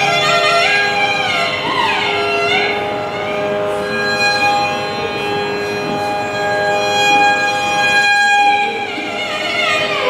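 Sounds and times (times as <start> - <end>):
violin long bowed note: 0.0 - 10.0.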